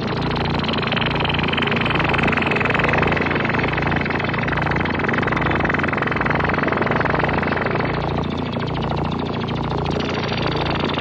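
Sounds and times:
low drone: 0:00.0 - 0:11.0
pulsing noisy synthesizer buzz: 0:00.0 - 0:11.0.

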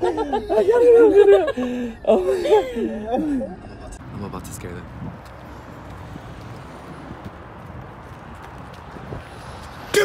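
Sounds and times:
footsteps on asphalt: 0:04.6 - 0:10.0.

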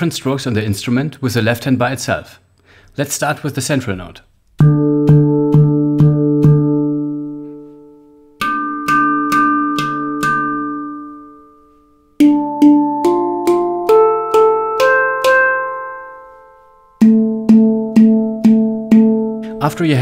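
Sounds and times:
handpan notes ringing: 0:04.6 - 0:19.8.

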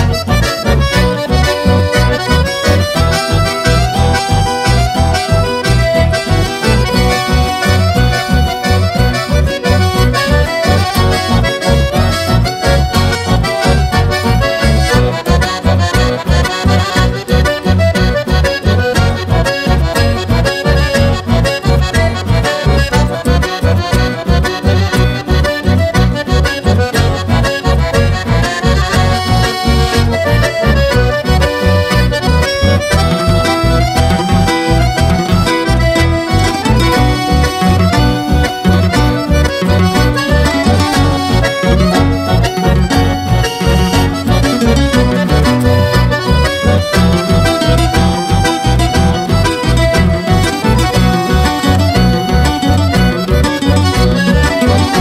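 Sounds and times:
accordion melody: 0:00.0 - 0:55.0
steady bass beat: 0:00.0 - 0:55.0.

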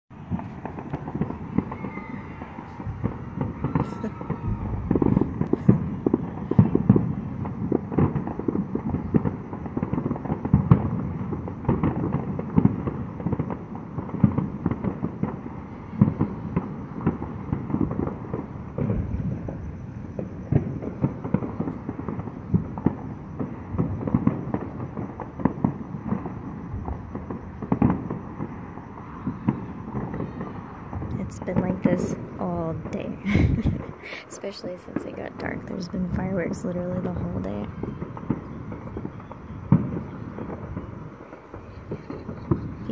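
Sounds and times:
fireworks crackling and popping: 0:00.1 - 0:42.9
loud firework booms: 0:00.1 - 0:42.9.

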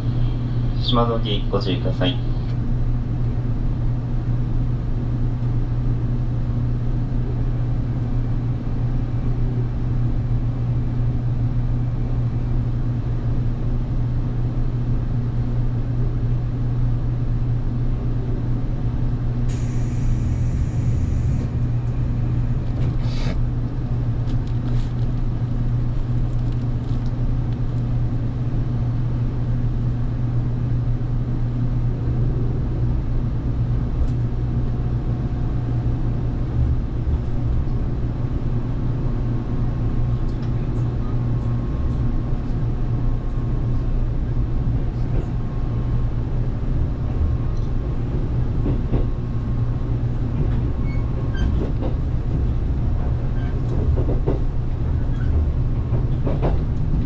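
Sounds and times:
electric train equipment humming: 0:17.3 - 0:57.0.

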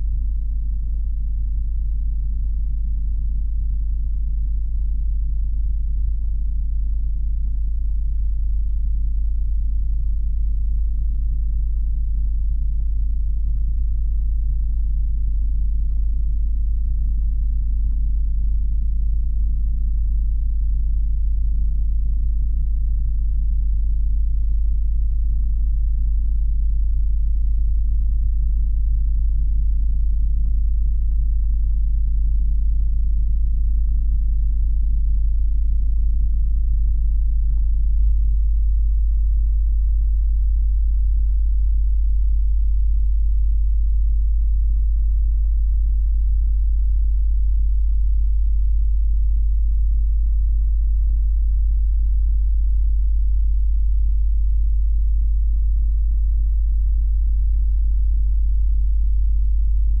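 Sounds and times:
deep low drone: 0:00.0 - 1:00.0.

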